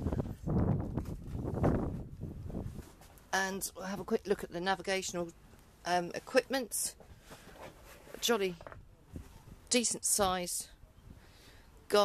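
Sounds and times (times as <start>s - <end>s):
wind buffeting microphone: 0.0s - 2.9s.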